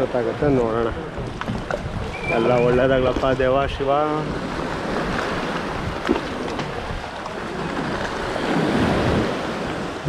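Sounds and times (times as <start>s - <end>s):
small waves washing: 0.0s - 10.0s
wind buffeting microphone: 0.0s - 10.0s.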